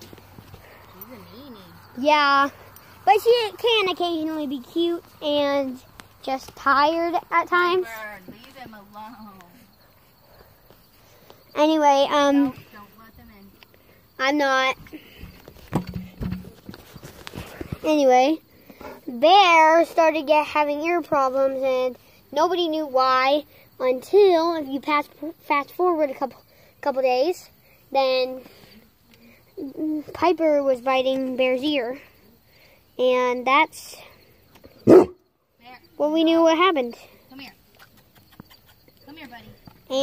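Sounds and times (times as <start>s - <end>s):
dog barking: 34.8s - 35.2s.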